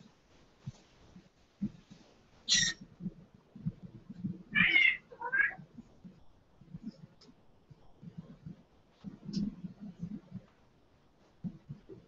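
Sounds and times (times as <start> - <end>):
cat meowing: 4.5 - 5.6.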